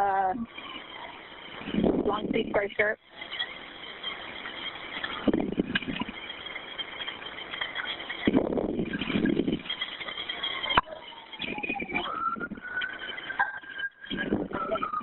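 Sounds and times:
muffled indistinct sound: 0:00.0 - 0:15.0
telephone line hiss: 0:00.0 - 0:15.0.

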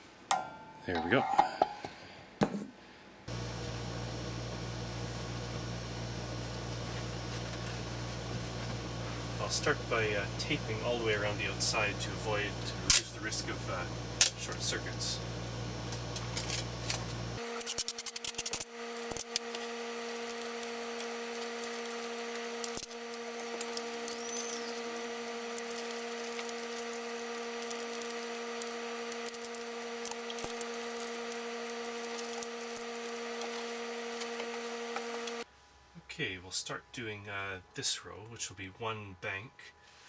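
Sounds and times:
steady hum: 0:03.2 - 0:40.0
tape pulled off roll crackling: 0:16.0 - 0:35.4.

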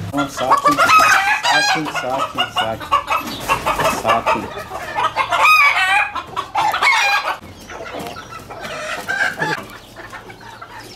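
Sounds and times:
chickens clucking: 0:00.0 - 0:10.9.

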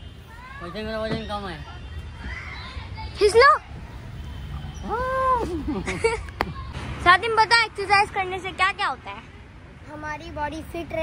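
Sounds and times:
child shouting: 0:00.2 - 0:01.1, 0:02.2 - 0:03.7.

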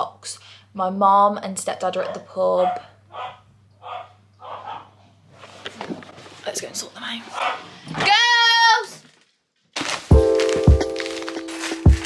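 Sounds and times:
dog barking: 0:02.6 - 0:05.0, 0:07.3 - 0:07.7.

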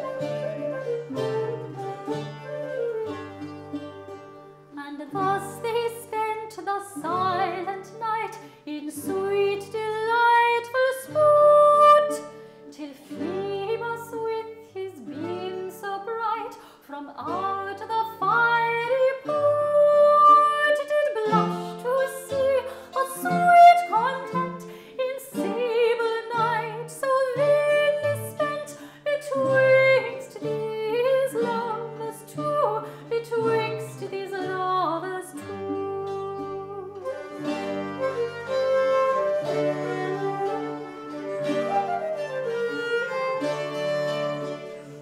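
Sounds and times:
flute: 0:00.0 - 0:04.5, 0:35.4 - 0:45.0
bowed viols: 0:00.0 - 0:45.0
plucked lute: 0:00.0 - 0:45.0
soprano singing a ballad: 0:04.8 - 0:37.2.

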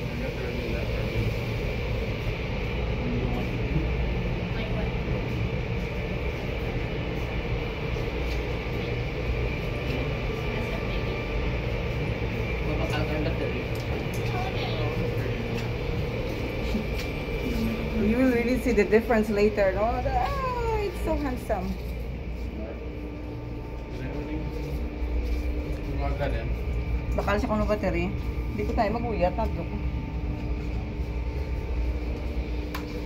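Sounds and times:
car wash machinery rumble: 0:00.0 - 0:33.0.

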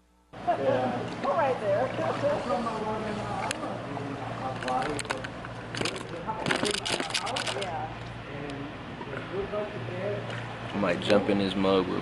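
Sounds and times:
steady low hum: 0:00.0 - 0:12.0
people talking indistinctly: 0:00.4 - 0:12.0.

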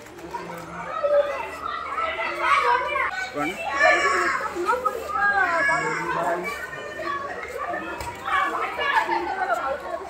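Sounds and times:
group of voices chattering: 0:00.0 - 0:10.0.

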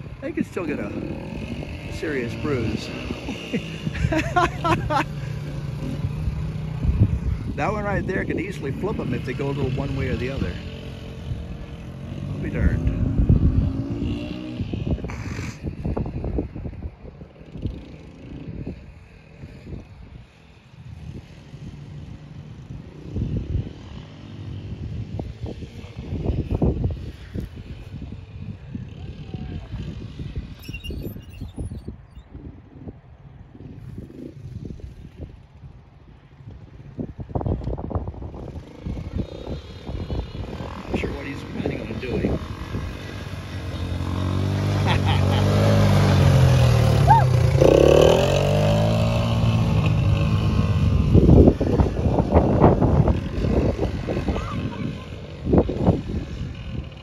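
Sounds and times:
small quad engine running: 0:00.0 - 0:31.8, 0:36.7 - 0:57.0
wind buffeting microphone: 0:00.0 - 0:57.0.

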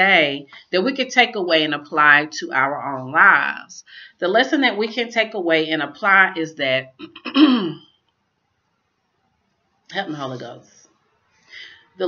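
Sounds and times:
woman clearing her throat: 0:07.0 - 0:07.9.

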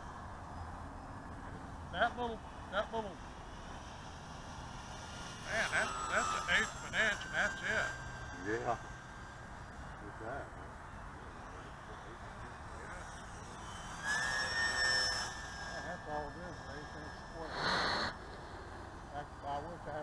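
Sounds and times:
model plane motor whine: 0:00.0 - 0:20.0
rushing burst of noise: 0:17.0 - 0:19.2.

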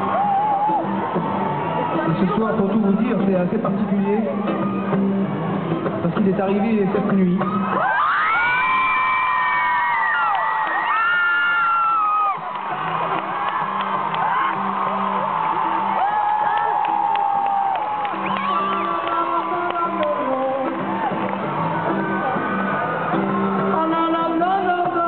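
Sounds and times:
high-pitched screams and whoops: 0:00.0 - 0:02.2, 0:07.4 - 0:24.2
concert crowd cheering: 0:00.0 - 0:25.0.

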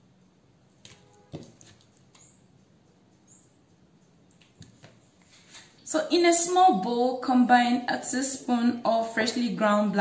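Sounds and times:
wet squishes of raw meat: 0:00.8 - 0:02.3.

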